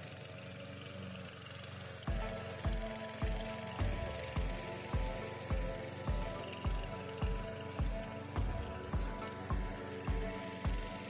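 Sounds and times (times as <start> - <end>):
lawn mower engine running: 0.0 - 11.0.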